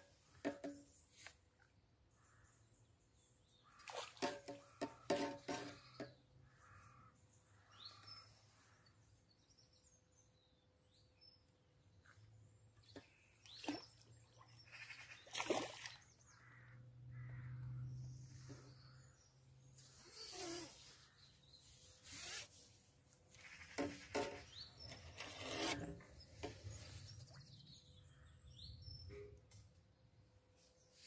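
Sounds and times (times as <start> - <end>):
crow-like caws: 6.5 - 7.2, 16.4 - 17.7.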